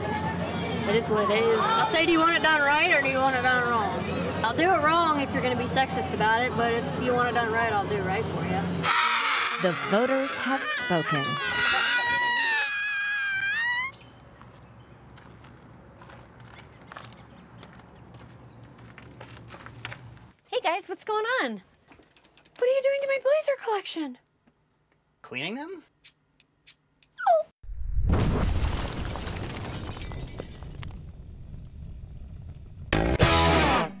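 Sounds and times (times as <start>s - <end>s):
high-pitched voice crying out: 8.9s - 14.0s, 27.2s - 27.5s
deep explosion rumble: 27.6s - 33.0s.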